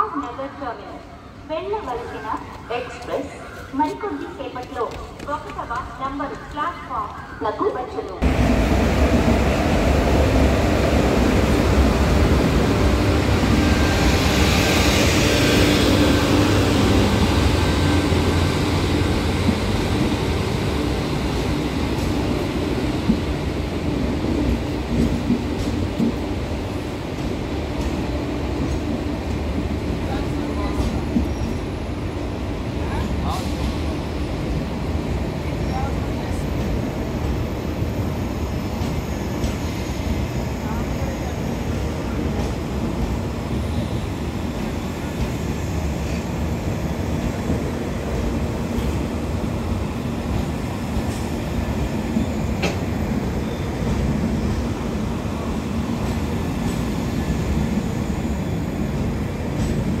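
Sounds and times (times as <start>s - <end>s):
train wheels rumbling on rail: 8.0s - 60.0s.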